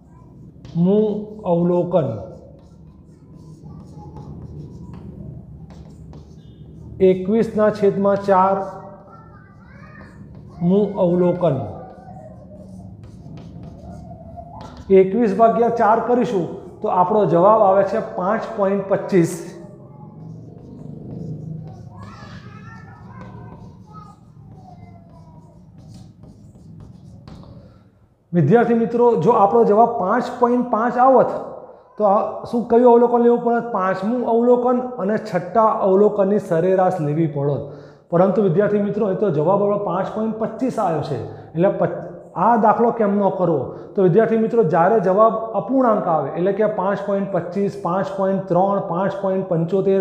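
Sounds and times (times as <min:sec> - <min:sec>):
chalk scratching on blackboard: 0:00.0 - 0:27.9
steady low hum: 0:10.0 - 0:28.3.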